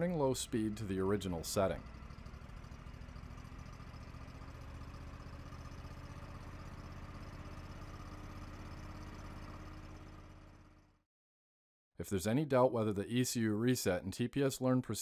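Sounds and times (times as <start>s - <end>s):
engine running: 0.0s - 11.0s.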